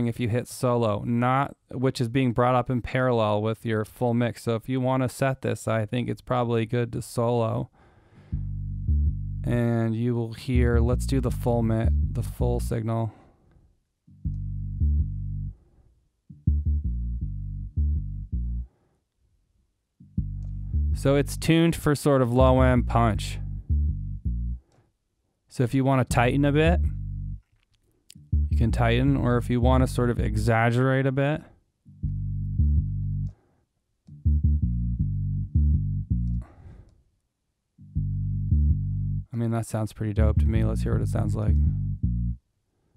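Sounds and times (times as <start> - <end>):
synth bass loop: 8.4 - 9.7, 10.6 - 12.8, 14.2 - 15.5, 16.3 - 18.6, 20.0 - 21.6, 22.4 - 24.6, 26.1 - 27.4, 28.2 - 30.5, 32.0 - 33.3, 34.1 - 36.4, 37.8 - 39.3, 40.2 - 42.4.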